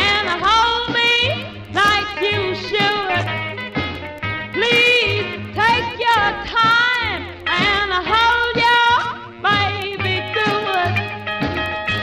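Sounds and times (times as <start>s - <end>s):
rhythm and blues record playing: 0.0s - 12.0s.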